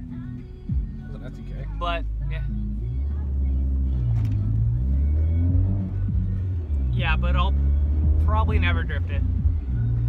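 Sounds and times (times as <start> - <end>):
car engine drone: 0.0 - 10.0
faint car stereo music: 0.0 - 10.0
road noise: 0.0 - 10.0.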